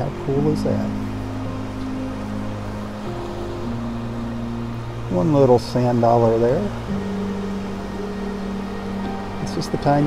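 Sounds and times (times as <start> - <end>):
soft music of held chords: 0.0 - 10.0.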